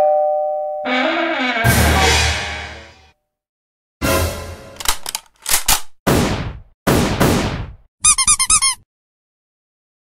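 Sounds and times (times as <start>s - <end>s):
cartoon high squeaks: 0.9s - 1.8s, 8.0s - 8.8s.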